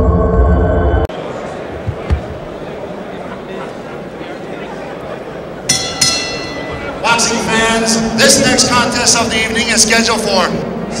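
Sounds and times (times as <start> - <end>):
murmur of crowd: 1.1 - 11.0
boxing ring bell ringing: 5.7 - 7.4.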